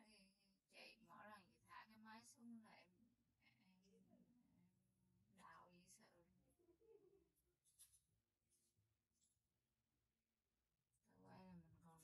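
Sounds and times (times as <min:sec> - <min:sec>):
faint hushed speech: 0:06.6 - 0:07.3.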